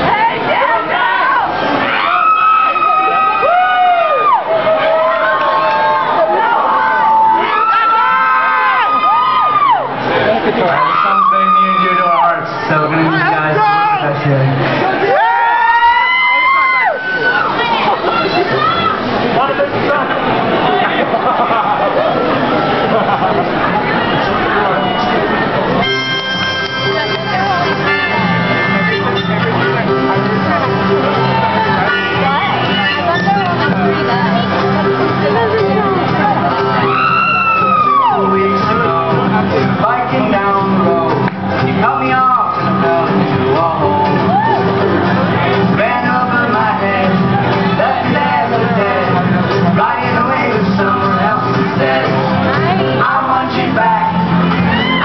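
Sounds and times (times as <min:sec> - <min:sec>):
crowd noise in hall: 0:00.0 - 0:55.0
backing voices: 0:16.3 - 0:55.0
strummed acoustic guitars: 0:25.4 - 0:36.9, 0:38.2 - 0:54.8
man singing: 0:37.6 - 0:54.7.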